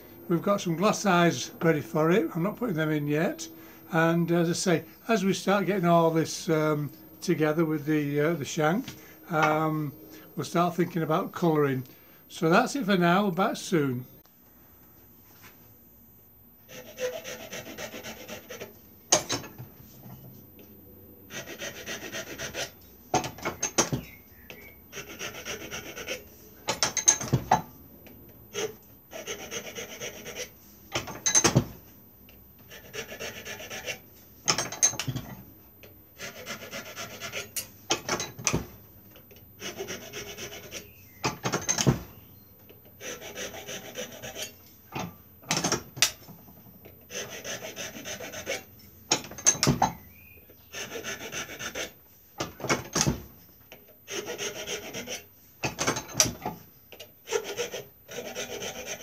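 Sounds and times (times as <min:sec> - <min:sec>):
hand file rasping on wood: 0:16.7 - 0:19.3, 0:21.3 - 0:23.4, 0:24.9 - 0:26.3, 0:28.5 - 0:31.2, 0:32.6 - 0:34.0, 0:36.2 - 0:37.6, 0:39.6 - 0:41.0, 0:43.0 - 0:44.6, 0:47.1 - 0:49.7, 0:50.7 - 0:52.6, 0:54.1 - 0:56.4, 0:57.2 - 0:59.0.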